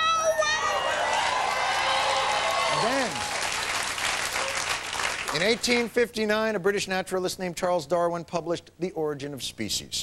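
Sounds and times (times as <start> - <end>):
audience applauding and cheering: 0.5 - 5.8.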